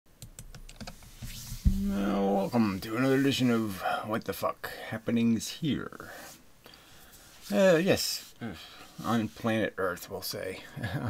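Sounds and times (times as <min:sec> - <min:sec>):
soft hiss: 0:00.7 - 0:10.8
thump: 0:01.6 - 0:02.0
man speaking: 0:01.8 - 0:06.1.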